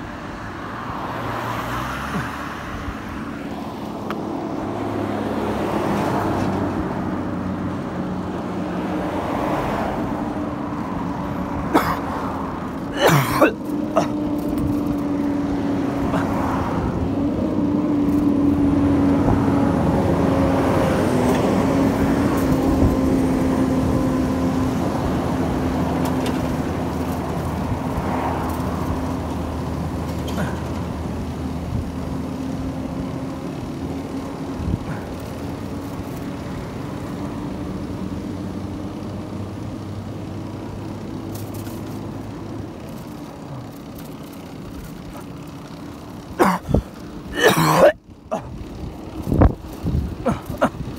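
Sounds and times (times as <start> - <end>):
truck diesel engine drone: 0.0 - 50.9.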